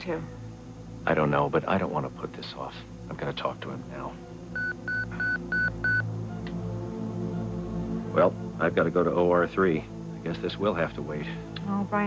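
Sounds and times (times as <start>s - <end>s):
soft background music: 0.0s - 12.0s
electronic pager beeping: 4.6s - 6.1s.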